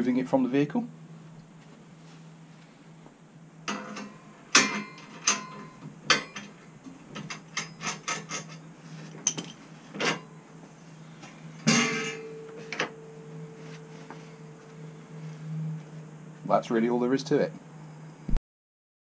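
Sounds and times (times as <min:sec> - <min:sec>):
metal knocks clanks and clicks: 0:03.7 - 0:08.6, 0:11.6 - 0:13.0
metal clatter: 0:03.7 - 0:10.3, 0:11.6 - 0:14.5.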